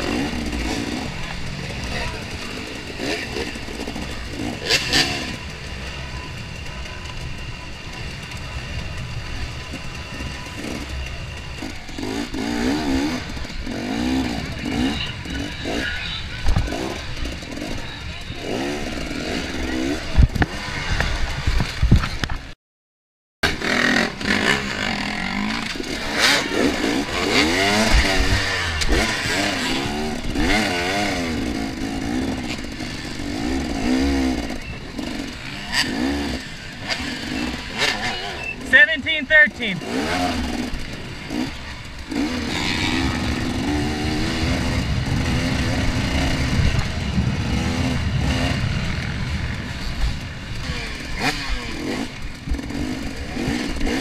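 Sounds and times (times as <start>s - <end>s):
dirt bike engine revving: 0.0s - 22.4s, 23.4s - 54.0s.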